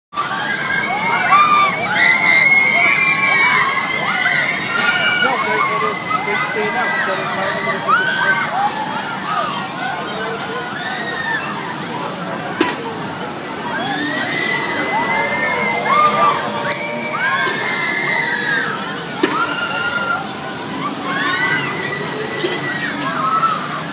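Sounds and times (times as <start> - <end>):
riders screaming: 13.7 - 23.9.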